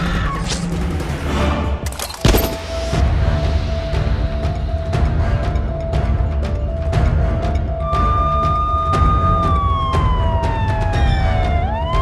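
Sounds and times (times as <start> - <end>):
dramatic news music: 2.3 - 12.0
siren wailing: 8.0 - 12.0.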